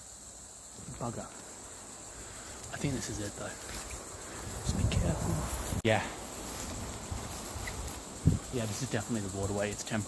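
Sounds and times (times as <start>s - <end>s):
high-pitched insect chorus: 0.0s - 10.0s
rustling of walking through grass: 2.2s - 10.0s.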